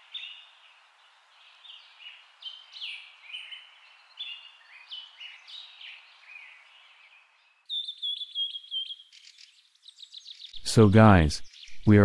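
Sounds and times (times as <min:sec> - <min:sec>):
bird chirping and trilling: 0:07.7 - 0:10.6.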